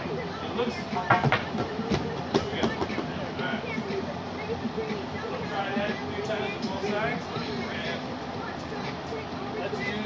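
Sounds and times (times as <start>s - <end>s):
indistinct talking in reverberant room: 0.0s - 10.0s.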